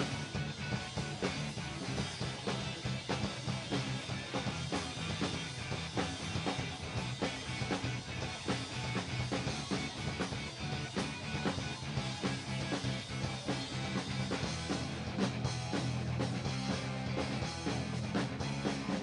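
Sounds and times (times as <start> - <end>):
bass guitar: 0.0 - 19.0
drumbeat: 0.0 - 19.0
electric guitars: 0.0 - 19.0.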